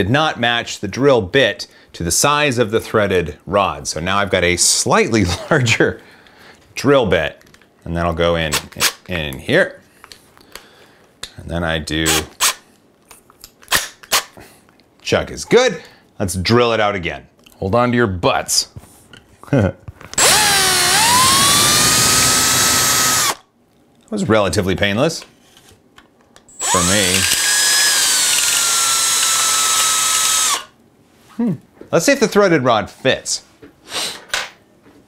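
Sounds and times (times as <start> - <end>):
drill chuck clicking: 26.6 - 30.7.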